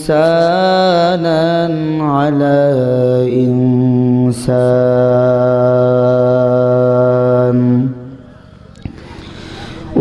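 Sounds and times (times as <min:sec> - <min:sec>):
man chanting through a microphone: 0:00.0 - 0:08.6.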